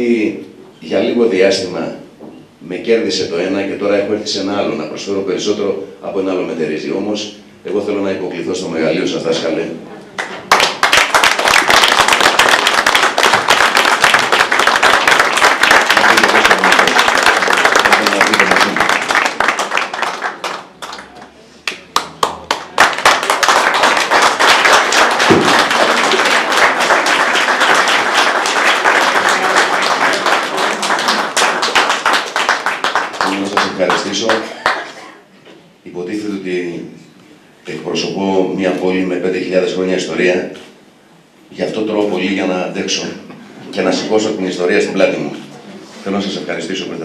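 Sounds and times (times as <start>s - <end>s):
audience applauding: 10.2s - 35.0s.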